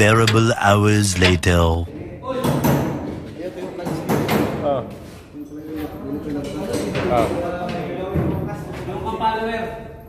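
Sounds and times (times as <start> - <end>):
men talking in echoing space: 0.0 - 10.0.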